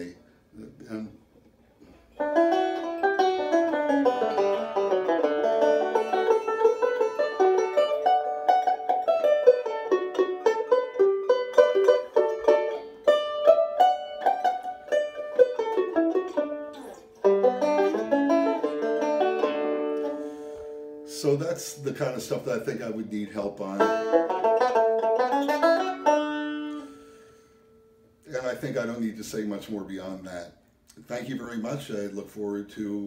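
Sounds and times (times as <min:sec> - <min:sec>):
banjo picked fingerstyle: 0:01.8 - 0:27.2.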